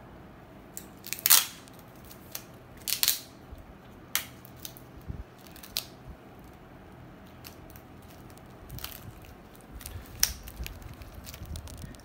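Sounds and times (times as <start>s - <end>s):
tape clicks and crackles: 0.7s - 12.0s
tape tearing: 0.8s - 3.4s, 4.2s - 6.0s, 7.3s - 12.0s.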